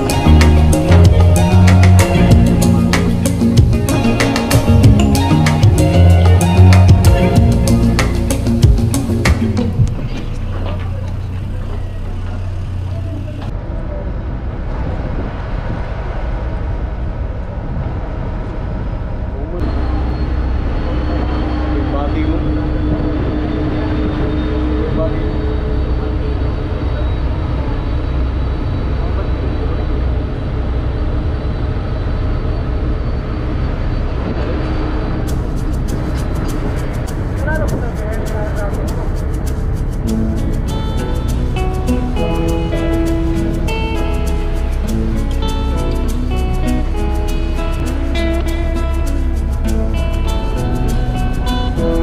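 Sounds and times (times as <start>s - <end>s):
indistinct voices: 0.0s - 14.6s
ferry engines droning: 0.0s - 52.0s.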